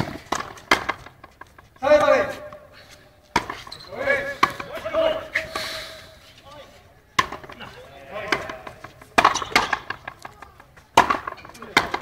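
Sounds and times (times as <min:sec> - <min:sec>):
rubber ball cracking off rackets: 0:00.0 - 0:01.6, 0:07.2 - 0:12.0.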